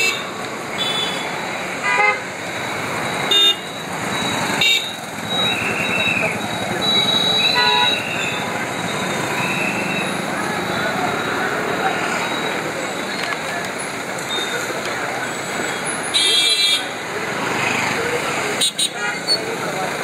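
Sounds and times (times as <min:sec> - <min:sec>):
crowd voices: 0:00.0 - 0:20.0
traffic din: 0:00.0 - 0:20.0
car horn toots: 0:03.3 - 0:03.6, 0:06.9 - 0:08.3.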